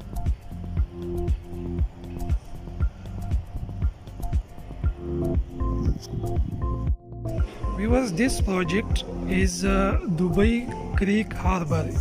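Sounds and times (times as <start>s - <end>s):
music with held notes: 0.0s - 12.0s.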